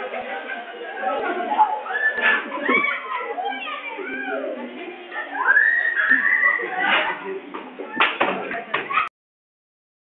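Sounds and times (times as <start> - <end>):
young voices talking and shouting: 0.0 - 9.1.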